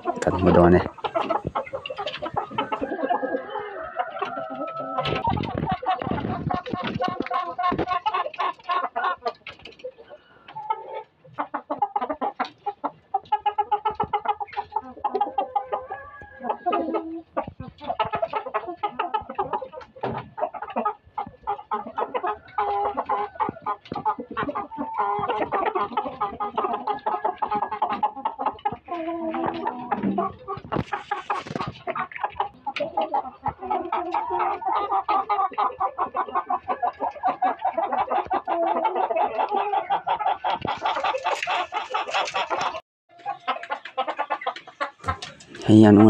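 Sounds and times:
chickens clucking: 0:00.0 - 0:46.0.

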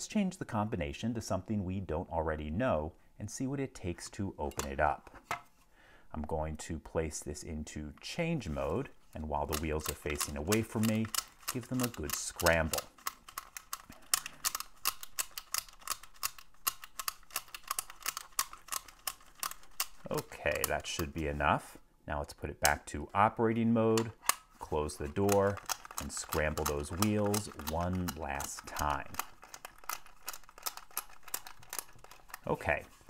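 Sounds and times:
small plastic clicks of code wheels: 0:09.4 - 0:21.2, 0:24.0 - 0:32.6
combination wheels clicking: 0:24.2 - 0:32.6.

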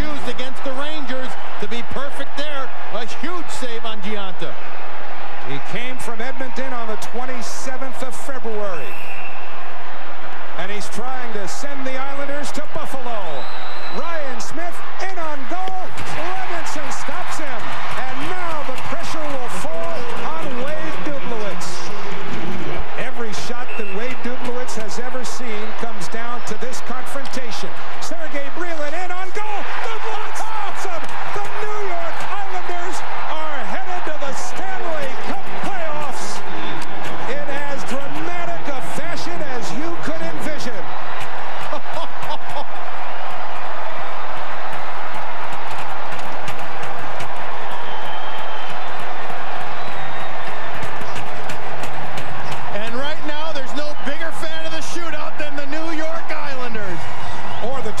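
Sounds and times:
crowd cheering and yelling: 0:00.0 - 0:58.0.

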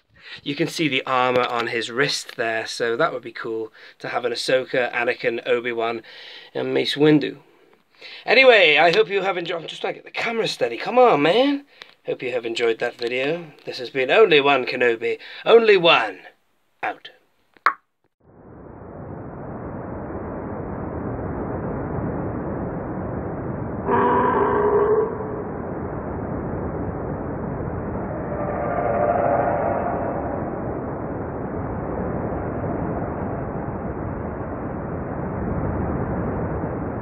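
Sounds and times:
short horn tone: 0:23.8 - 0:25.6, 0:28.3 - 0:30.2
rushing roar: 0:23.8 - 0:31.8.

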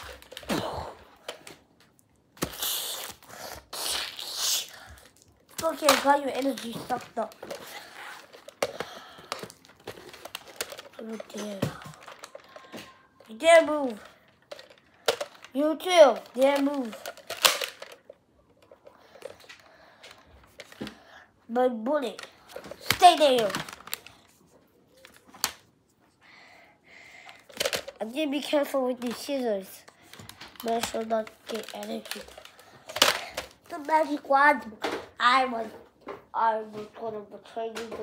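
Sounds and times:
plastic clicks and rustling: 0:00.0 - 0:02.6, 0:04.8 - 0:21.1, 0:21.9 - 0:25.7, 0:27.2 - 0:36.3
child hissing with mouth: 0:02.4 - 0:04.8.

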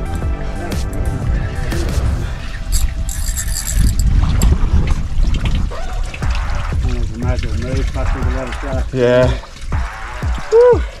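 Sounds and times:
wind rumbling on microphone: 0:00.9 - 0:11.0
water sloshing against hull: 0:02.2 - 0:11.0.

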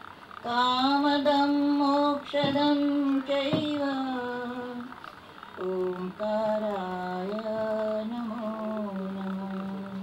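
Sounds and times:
woman chanting a prayer: 0:00.4 - 0:10.0.

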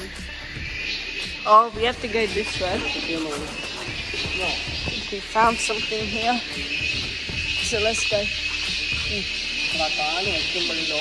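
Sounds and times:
background music: 0:00.0 - 0:11.0
people talking indistinctly: 0:00.0 - 0:11.0.

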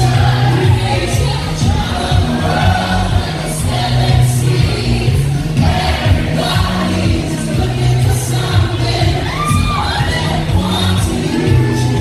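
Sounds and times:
audience cheering and shouting: 0:00.0 - 0:12.0
loud pop music with heavy bass: 0:00.0 - 0:12.0
high whoops: 0:09.2 - 0:10.4.

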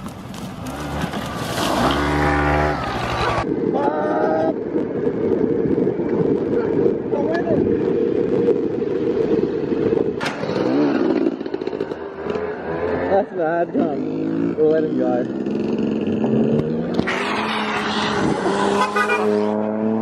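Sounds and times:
wind rumble on microphone: 0:00.0 - 0:14.6, 0:15.2 - 0:18.8.

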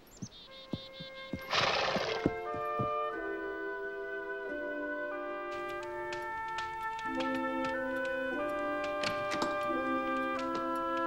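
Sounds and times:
hoof clops: 0:00.0 - 0:03.7, 0:05.4 - 0:11.0
orchestral music: 0:00.4 - 0:11.0
horse whinnying: 0:00.7 - 0:02.6.

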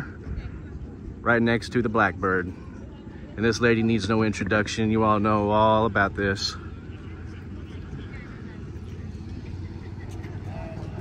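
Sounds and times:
faint distant voices: 0:00.0 - 0:11.0
steady low rumble: 0:00.0 - 0:11.0.

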